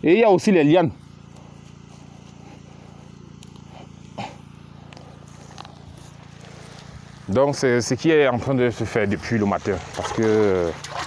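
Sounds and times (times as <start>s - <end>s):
low hum: 0.9s - 11.0s.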